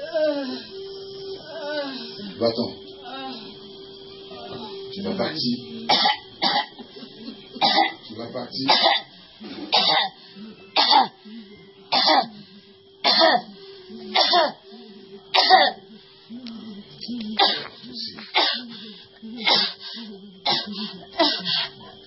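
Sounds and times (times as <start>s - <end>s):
person coughing: 5.9s - 8.0s, 8.6s - 9.1s, 9.7s - 10.2s, 10.8s - 11.2s, 11.9s - 12.3s, 13.0s - 13.5s, 14.1s - 14.6s, 15.4s - 15.8s, 17.4s - 17.7s, 18.4s - 18.7s, 19.4s - 19.8s, 20.4s - 21.4s.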